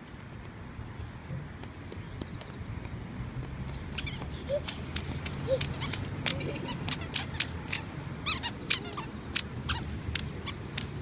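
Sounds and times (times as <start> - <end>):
squeaky shoes on stone paving: 3.5 - 11.0.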